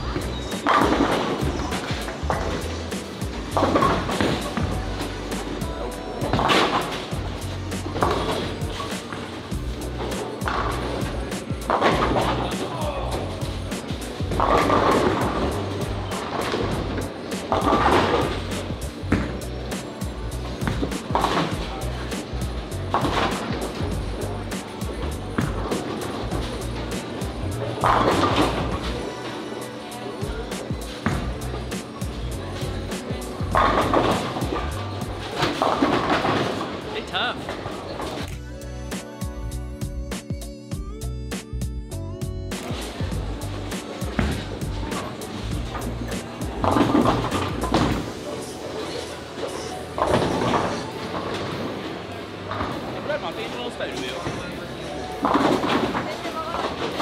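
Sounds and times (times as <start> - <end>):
bowling balls rolling: 0.0 - 5.6, 6.2 - 29.2, 30.8 - 38.3, 42.6 - 53.5, 54.1 - 57.0
background music with bass: 0.0 - 29.2, 30.1 - 36.5, 37.1 - 51.4.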